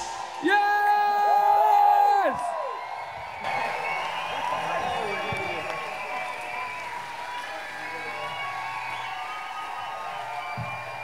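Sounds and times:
audience cheering and applauding: 0.0s - 11.0s
music: 3.5s - 11.0s.

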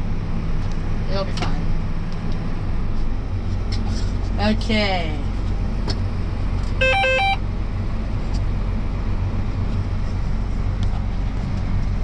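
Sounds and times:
engine drone inside cab: 0.0s - 12.0s
electronic chime: 6.8s - 7.4s.

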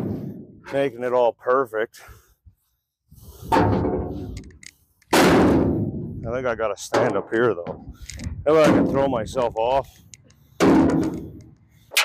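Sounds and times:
pickaxe banging on metal: 10.6s - 11.2s.

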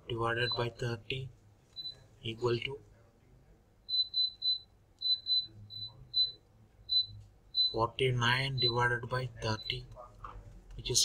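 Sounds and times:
high-pitched electronic beeps: 0.2s - 1.0s, 3.9s - 9.9s.

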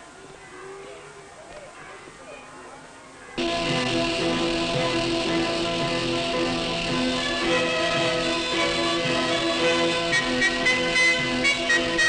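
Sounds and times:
orchestra playing sustained chords: 3.4s - 12.0s.

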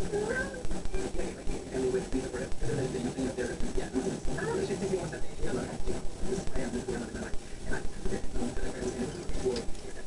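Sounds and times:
muffled talking: 0.0s - 10.0s.

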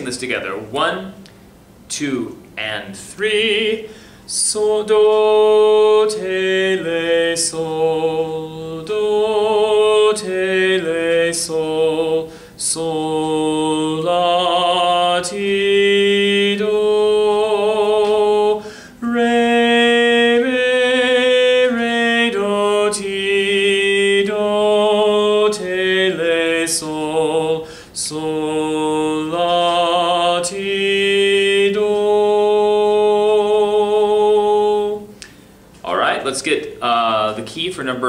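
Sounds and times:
man singing solfege syllables: 1.9s - 38.0s.

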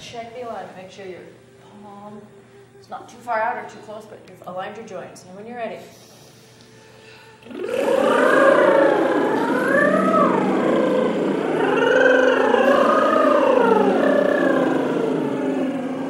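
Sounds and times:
singers vocal sirens: 7.4s - 16.0s.

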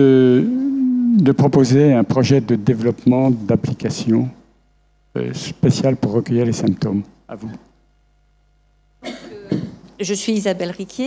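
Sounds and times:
person saying euh: 0.0s - 1.6s
person coughing: 9.0s - 9.8s.

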